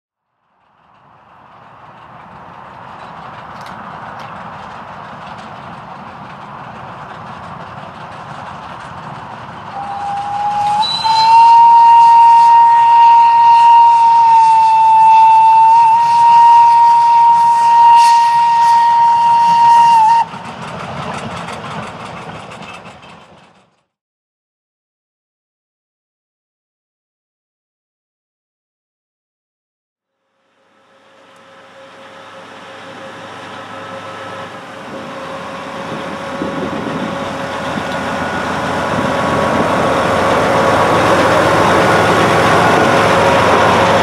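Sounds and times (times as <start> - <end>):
steam train running: 0.4 - 23.8, 30.5 - 44.0
steam locomotive whistle: 9.7 - 20.4, 30.7 - 44.0.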